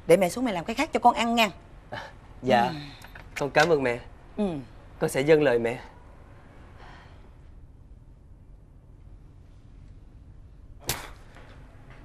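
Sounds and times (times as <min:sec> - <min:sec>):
low steady hum: 0:00.0 - 0:12.0
sharp crack: 0:10.8 - 0:11.6.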